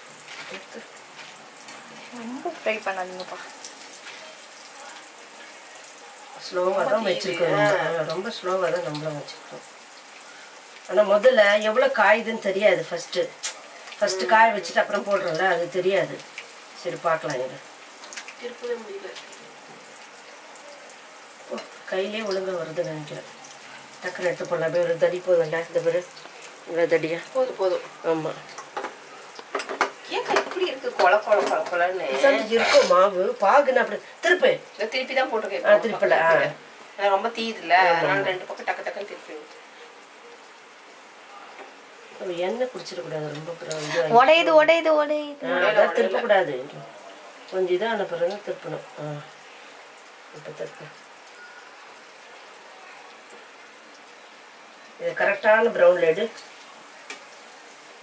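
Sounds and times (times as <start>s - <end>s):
oil sizzling in frying pan: 0.0s - 58.0s
person talking: 6.7s - 8.2s.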